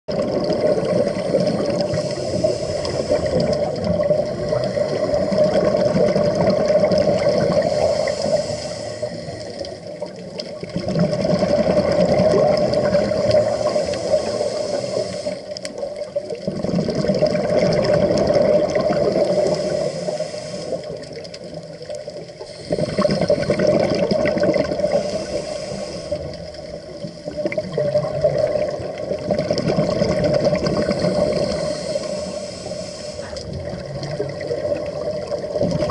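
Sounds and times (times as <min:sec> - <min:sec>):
underwater regulator bubbles: 0:00.1 - 0:35.9.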